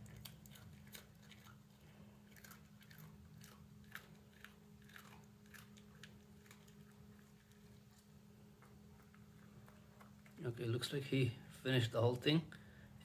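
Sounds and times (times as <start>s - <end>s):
dog chewing crunchy cookie: 0.0s - 11.1s.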